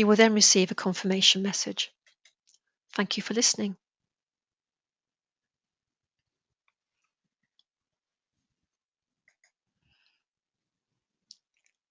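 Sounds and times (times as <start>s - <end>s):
faint mouse clicks: 9.2s - 9.6s.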